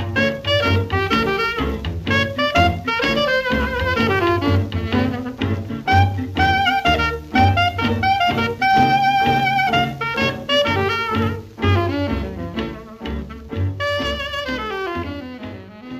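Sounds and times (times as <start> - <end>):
upbeat jazz with horns and bass: 0.0 - 15.9.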